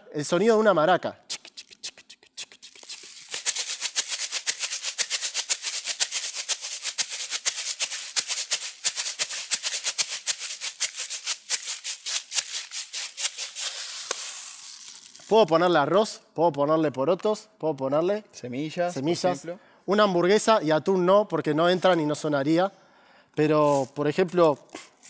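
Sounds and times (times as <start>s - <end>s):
rice rattling in plastic bottle: 2.6s - 15.3s.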